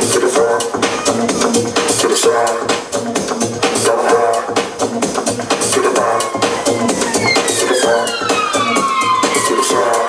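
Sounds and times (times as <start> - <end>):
loud electronic dance music: 0.0 - 10.0.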